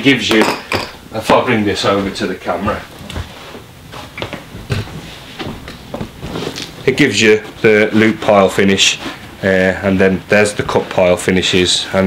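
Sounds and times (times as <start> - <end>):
footsteps on carpet: 3.0 - 6.8.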